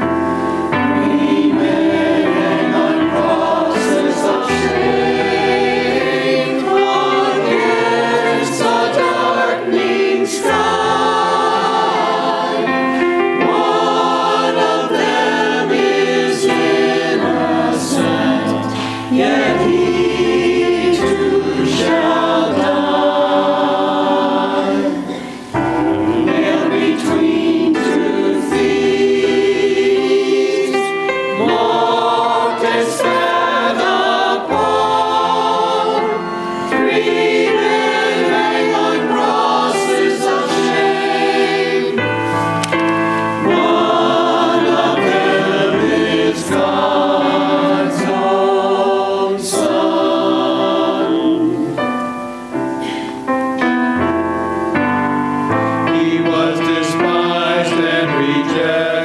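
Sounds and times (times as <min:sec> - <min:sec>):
church choir singing: 0:00.0 - 0:59.0.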